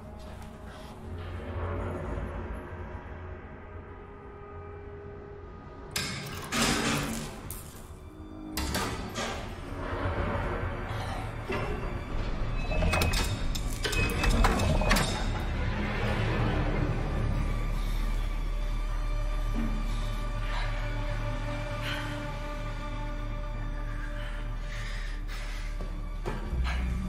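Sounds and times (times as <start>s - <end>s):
tense music with low drone: 0.0s - 27.0s.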